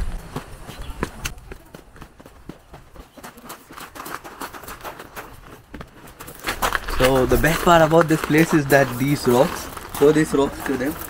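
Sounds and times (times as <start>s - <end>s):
footsteps crunching on gravel: 0.0s - 11.0s.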